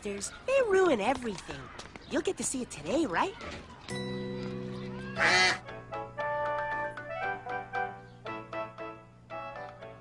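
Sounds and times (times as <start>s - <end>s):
bouncy children's keyboard tune: 3.9s - 10.0s
held keyboard chord: 3.9s - 10.0s
cartoon duck quack: 5.2s - 5.6s.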